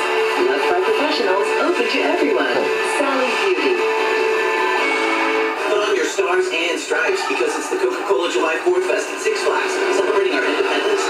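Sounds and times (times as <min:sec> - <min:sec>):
thin music over radio: 0:00.0 - 0:11.0.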